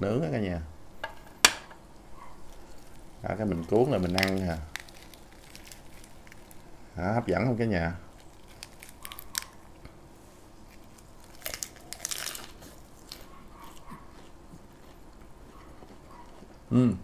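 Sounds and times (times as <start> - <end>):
faint chewing: 2.2 - 6.7, 8.1 - 17.0
lettuce leaf crinkling: 2.4 - 6.7, 8.1 - 9.8, 10.6 - 15.0
crunchy bite: 4.0 - 6.7, 8.1 - 9.8, 10.7 - 17.0.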